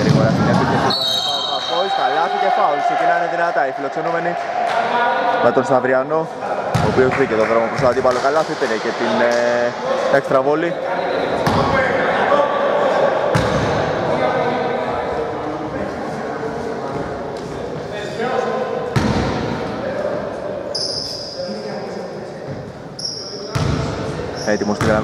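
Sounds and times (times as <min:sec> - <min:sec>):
voices echoing in gymnasium: 0:00.0 - 0:25.0
basketball bouncing on wooden court: 0:19.0 - 0:19.3, 0:23.5 - 0:23.9.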